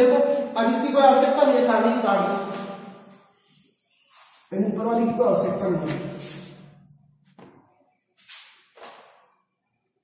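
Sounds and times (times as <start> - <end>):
duster wiping whiteboard: 2.1 - 4.6, 5.8 - 6.6.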